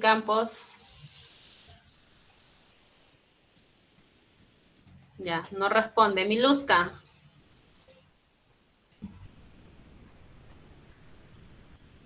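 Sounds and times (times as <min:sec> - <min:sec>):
faint audio line hiss: 0:00.0 - 0:12.0.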